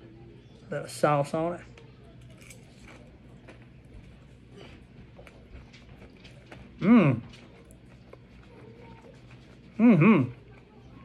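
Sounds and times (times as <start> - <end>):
chewing with mouth clicks: 2.2 - 11.0.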